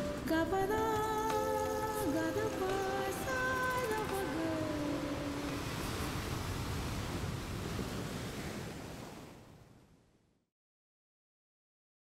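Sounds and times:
ocean surf breaking: 0.0s - 9.6s.

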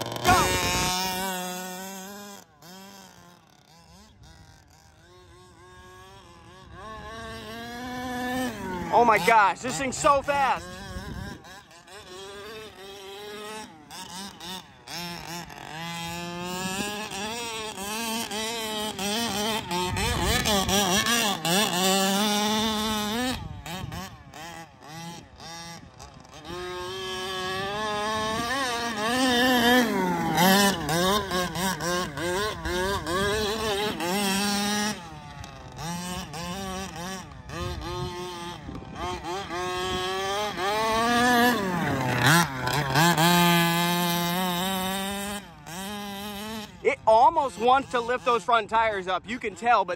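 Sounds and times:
two-stroke engine revving: 0.0s - 49.9s.

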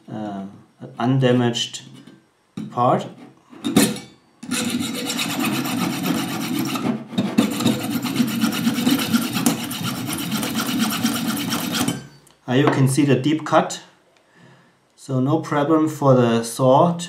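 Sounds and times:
hacksaw cutting brass: 3.8s - 12.2s.

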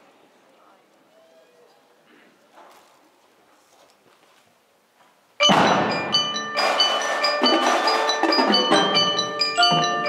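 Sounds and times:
percussion ensemble loud hit: 5.4s - 10.0s
ringing marimba notes: 5.4s - 10.0s.

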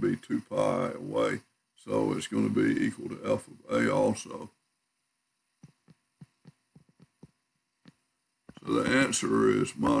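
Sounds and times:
stylus tapping tablet screen: 5.5s - 8.8s.

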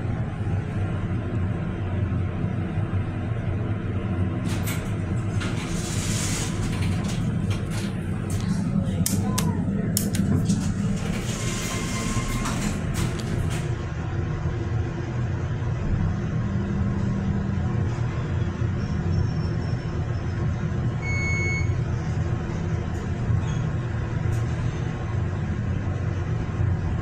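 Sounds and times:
elevator hydraulic hum: 0.0s - 27.0s
elevator doors clattering shut: 4.4s - 8.6s, 10.2s - 13.9s.

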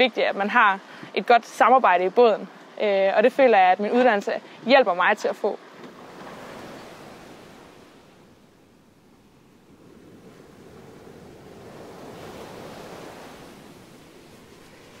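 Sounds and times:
rushing water: 0.0s - 15.0s
wind: 0.0s - 15.0s.

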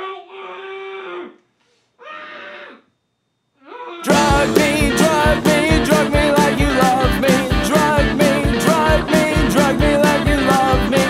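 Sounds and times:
person wailing: 3.7s - 11.0s.

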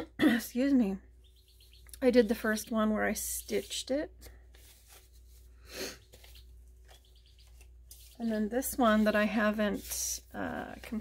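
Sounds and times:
person exhaling or sniffing: 5.6s - 6.1s.

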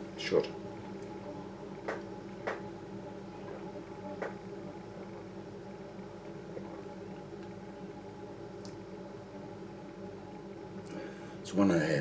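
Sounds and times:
low hum with held tones: 0.0s - 12.0s.

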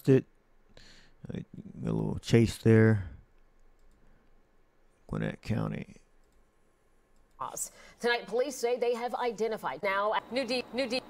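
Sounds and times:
computer mouse clicks: 3.6s - 4.1s.

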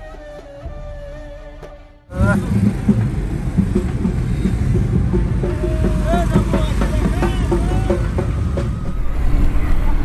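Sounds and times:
car engine and road noise rumble: 2.1s - 10.0s.

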